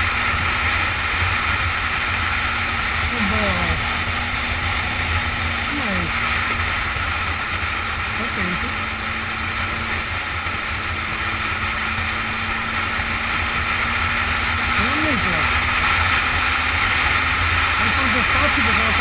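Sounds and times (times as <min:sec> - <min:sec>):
motorcycle engine drone: 0:00.0 - 0:19.0.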